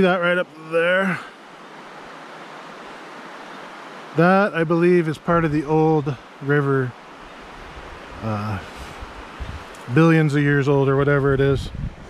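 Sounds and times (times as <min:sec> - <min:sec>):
river rushing over rocks: 0:00.0 - 0:10.7.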